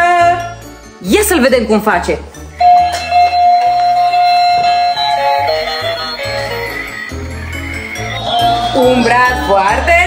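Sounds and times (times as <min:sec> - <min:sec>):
toy electronic tune: 0:02.5 - 0:09.9.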